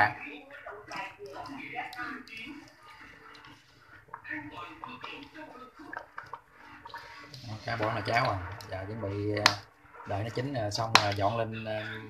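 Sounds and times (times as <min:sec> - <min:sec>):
chopsticks stirring porridge: 0:00.0 - 0:12.0
porridge simmering: 0:00.0 - 0:12.0.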